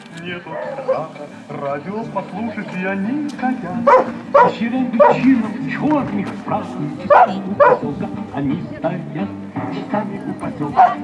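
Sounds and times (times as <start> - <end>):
background speech: 0.0 - 11.0
music: 0.0 - 11.0
dog barking: 0.5 - 1.0, 3.9 - 5.3, 7.1 - 7.9, 10.8 - 11.0.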